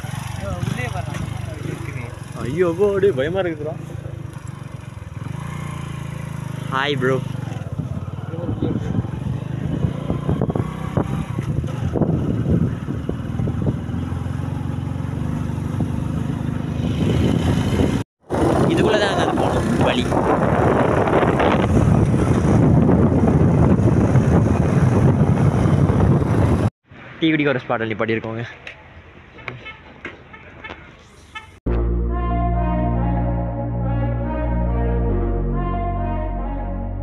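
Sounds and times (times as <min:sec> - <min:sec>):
vehicle engine and road noise: 0:00.0 - 0:31.8.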